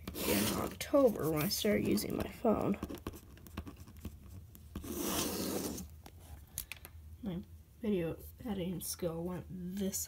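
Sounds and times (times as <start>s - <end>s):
pen scratching across paper: 0.0s - 2.0s, 4.8s - 5.9s.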